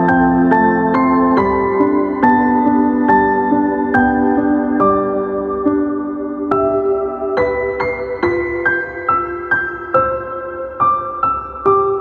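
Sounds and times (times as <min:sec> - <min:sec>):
slow gentle piano music: 0:00.0 - 0:12.0.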